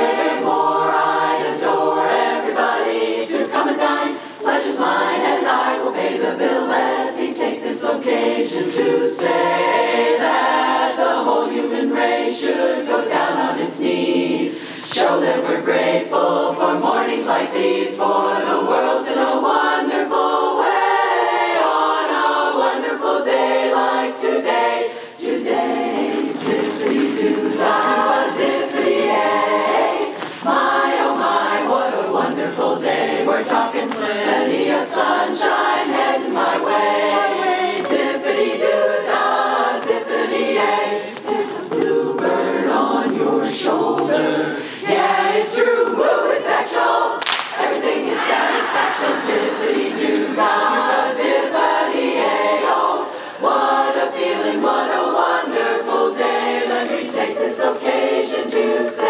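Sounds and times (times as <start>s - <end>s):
women's chorus singing: 0.0s - 59.0s.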